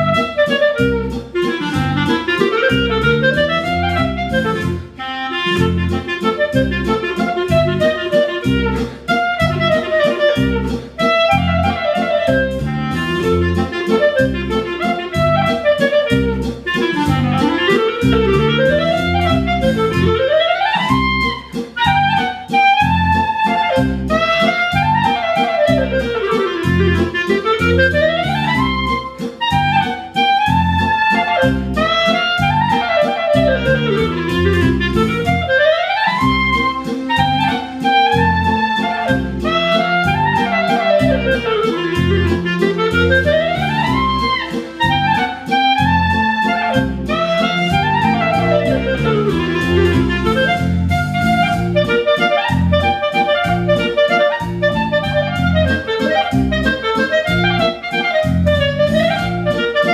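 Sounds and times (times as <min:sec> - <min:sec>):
clarinet playing a waltz: 0:00.0 - 0:59.9
waltz accompaniment: 0:00.0 - 0:59.9.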